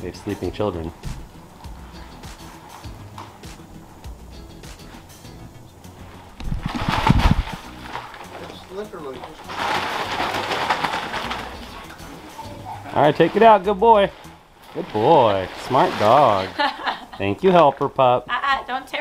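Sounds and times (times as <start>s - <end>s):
dog dragging debris on dirt: 0.0s - 16.8s
soft background music: 0.0s - 19.0s.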